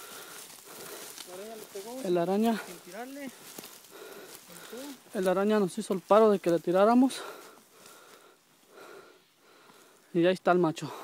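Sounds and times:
faint breaths: 0:00.0 - 0:11.0.

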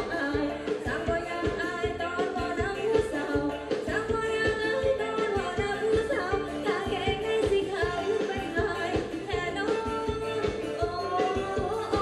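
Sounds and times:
person singing: 0:00.0 - 0:12.0
steady drum beat: 0:00.0 - 0:12.0.

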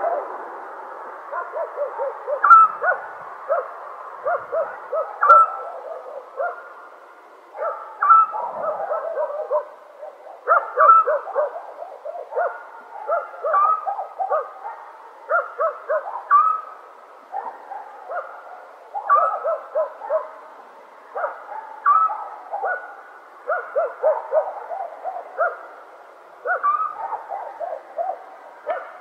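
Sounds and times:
animal calls: 0:01.3 - 0:06.7, 0:07.6 - 0:14.7, 0:15.3 - 0:16.8, 0:17.5 - 0:20.3, 0:21.2 - 0:25.6, 0:26.5 - 0:29.0.

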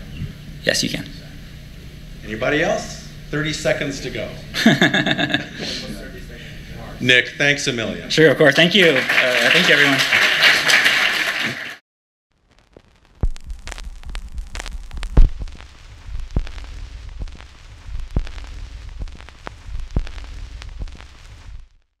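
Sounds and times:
irregular clicks and pops: 0:12.6 - 0:21.6
low rumble: 0:13.2 - 0:21.7.

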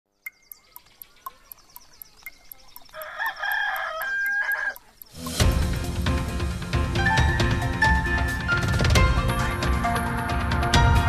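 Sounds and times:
clock ticking: 0:00.3 - 0:05.9
rooster crowing: 0:03.0 - 0:04.8
loud theme music: 0:05.2 - 0:11.0.

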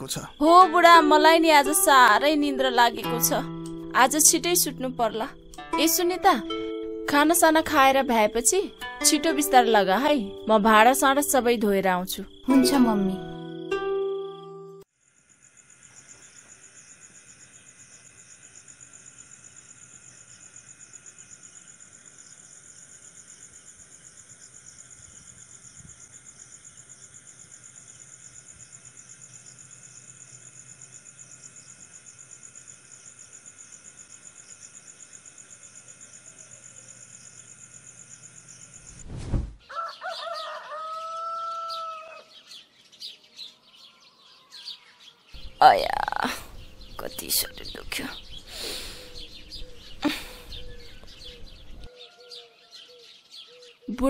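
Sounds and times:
birds chirping: 0:00.0 - 0:14.6, 0:39.6 - 0:54.0
crickets chirping: 0:00.0 - 0:39.1, 0:43.6 - 0:51.9
thump: 0:39.0 - 0:39.6
rooster crowing: 0:39.7 - 0:42.5, 0:51.9 - 0:52.7.

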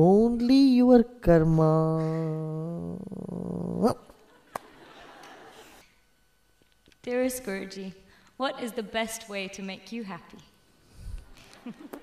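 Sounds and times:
faint room noise: 0:00.0 - 0:12.0
man laughing: 0:11.5 - 0:12.0.

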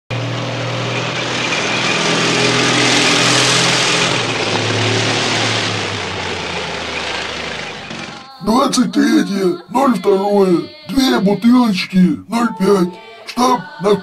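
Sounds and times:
tank engine rumbling: 0:00.1 - 0:11.6.

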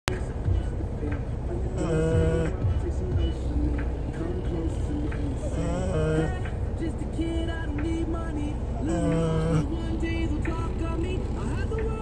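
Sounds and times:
background music: 0:00.1 - 0:12.0
low rumble of moving car: 0:00.1 - 0:12.0
dog snoring: 0:01.8 - 0:02.6, 0:05.5 - 0:06.4, 0:08.9 - 0:09.8.

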